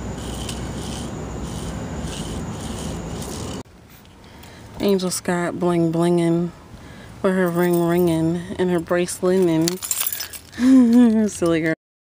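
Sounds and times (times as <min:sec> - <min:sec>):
low steady rumble: 0:00.0 - 0:10.1.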